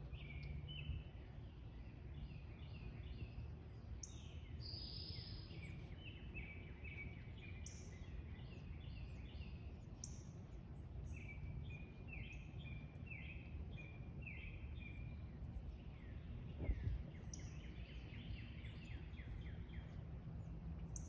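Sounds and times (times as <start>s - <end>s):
low steady outdoor rumble: 0.0s - 21.0s
songbird singing: 0.0s - 21.0s.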